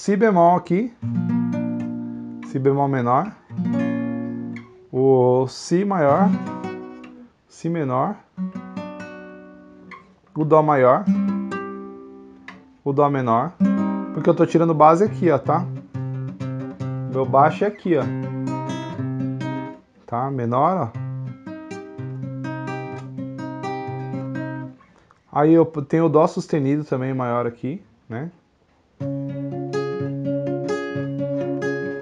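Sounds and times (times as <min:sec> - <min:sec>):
classical guitar chord strummed: 0:01.0 - 0:02.6, 0:03.5 - 0:04.9, 0:06.1 - 0:07.2, 0:11.0 - 0:12.8, 0:13.6 - 0:19.8, 0:21.0 - 0:24.8, 0:29.0 - 0:32.0.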